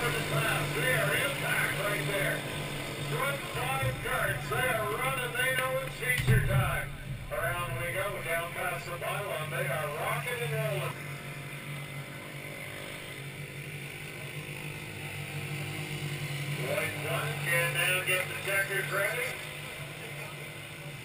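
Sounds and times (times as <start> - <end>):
race car engines droning: 0.0 - 21.0
public-address voice: 3.1 - 10.9
low thump: 6.0 - 9.0.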